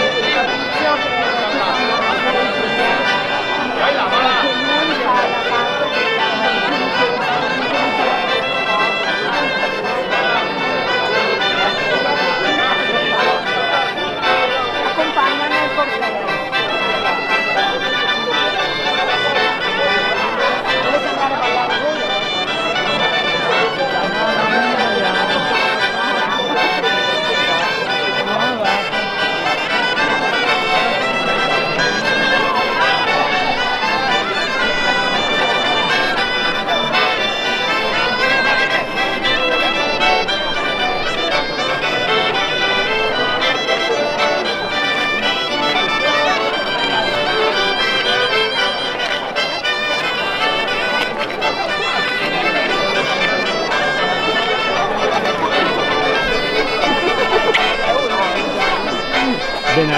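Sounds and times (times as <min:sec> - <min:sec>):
crowd voices: 0:00.0 - 0:59.9
folk dance tune on accordion and shawm: 0:00.0 - 0:59.9.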